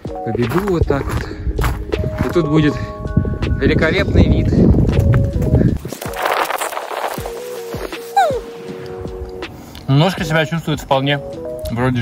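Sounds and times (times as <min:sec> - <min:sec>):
background music: 0:00.0 - 0:12.0
running footsteps on rocky trail: 0:00.5 - 0:02.4
wind on microphone: 0:00.8 - 0:07.3.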